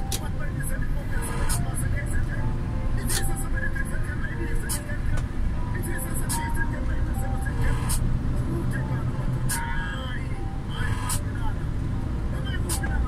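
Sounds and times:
truck engine and road rumble: 0:00.0 - 0:13.0
voice or music playing: 0:00.0 - 0:13.0.

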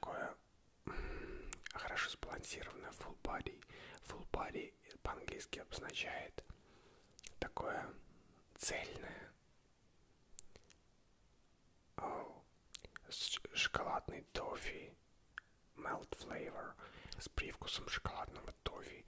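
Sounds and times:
man whispering: 0:00.0 - 0:09.4, 0:11.9 - 0:19.0.

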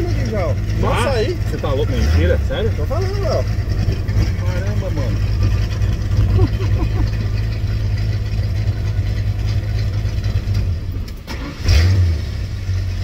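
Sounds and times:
car engine idling: 0:00.0 - 0:13.0
engine cranking and starting: 0:00.0 - 0:13.0.

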